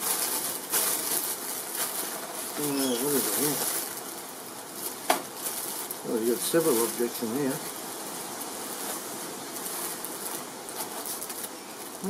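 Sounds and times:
plastic packaging rustling: 0.0 - 12.0.

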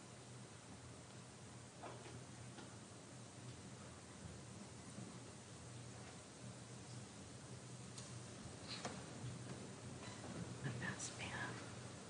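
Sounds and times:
faint room hum: 0.0 - 12.0
person whispering: 10.7 - 11.7.

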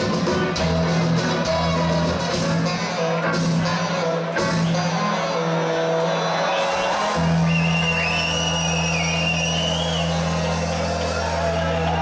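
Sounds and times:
live ska band playing: 0.0 - 12.0.

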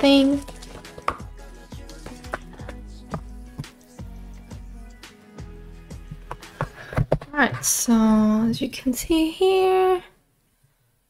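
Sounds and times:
faint background music: 0.0 - 10.2.

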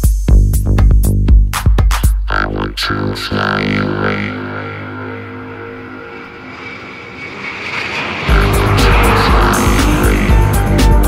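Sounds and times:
minimal techno: 2.1 - 5.8.

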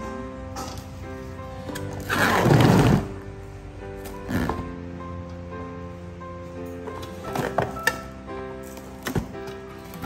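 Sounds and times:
background music: 0.0 - 10.0.

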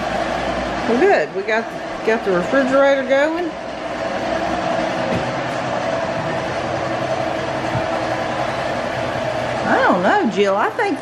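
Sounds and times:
refrigerator humming: 0.0 - 11.0.

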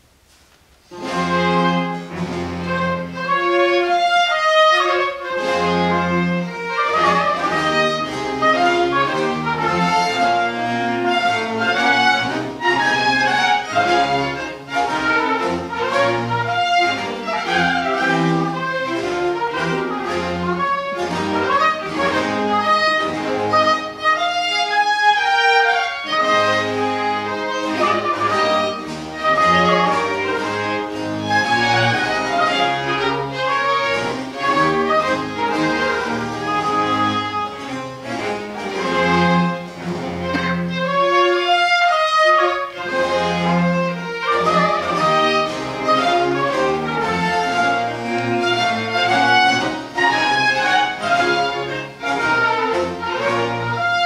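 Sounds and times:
baroque orchestra playing: 0.7 - 54.0.

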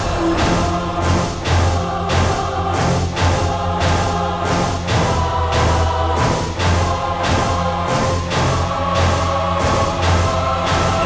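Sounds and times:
choir-like voices holding notes: 0.0 - 11.0
low drone: 0.0 - 11.0.

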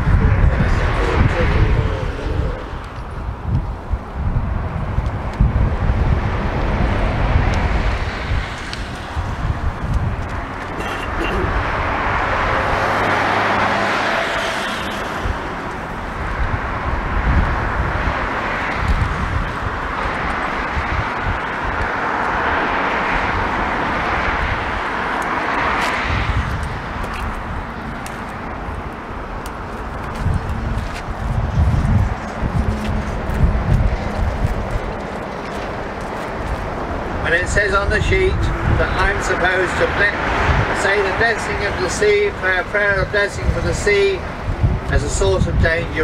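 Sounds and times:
road traffic passing: 0.0 - 46.0
wind gusting on microphone: 0.0 - 46.0.

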